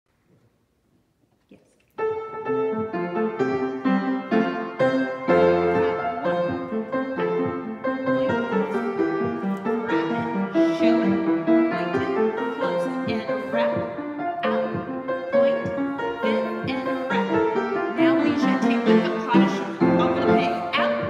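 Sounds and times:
solo piano playing: 2.0 - 21.0.

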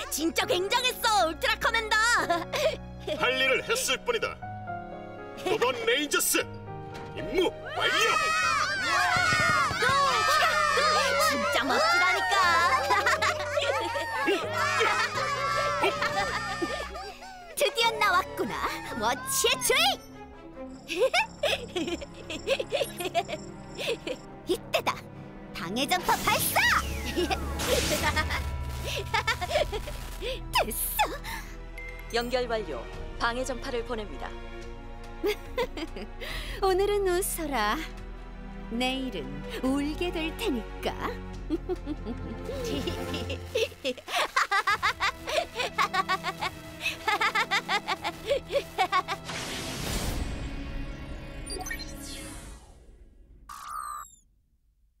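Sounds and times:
background music: 0.0 - 53.2.

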